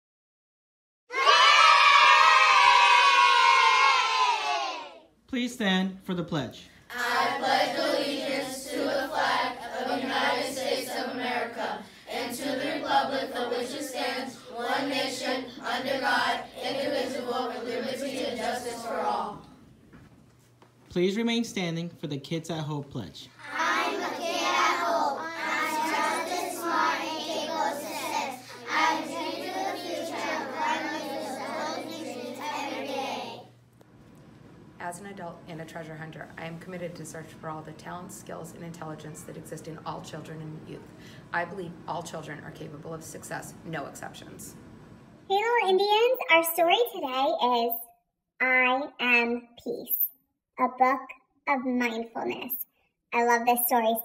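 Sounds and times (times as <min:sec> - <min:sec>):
children shouting and cheering: 0:01.1 - 0:05.1, 0:23.4 - 0:33.4.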